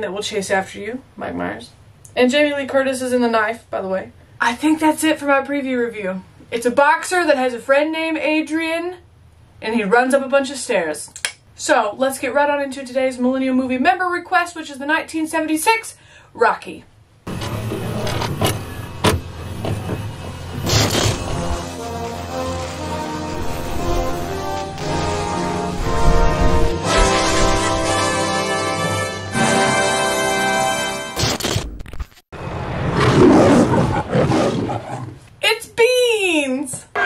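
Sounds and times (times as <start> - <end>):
synthwave intro music: 20.3 - 31.2
loud burst: 20.6 - 28.4
lion roaring: 32.8 - 35.2.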